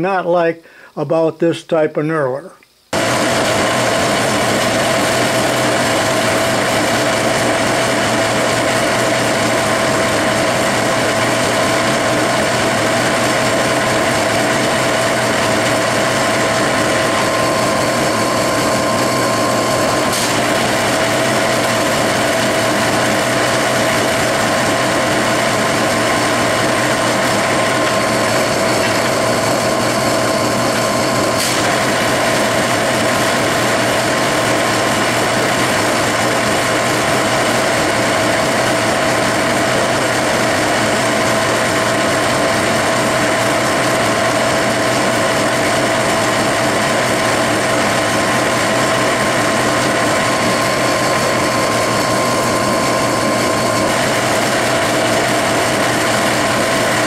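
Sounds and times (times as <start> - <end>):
metal lathe gear whine: 3.0 - 57.0.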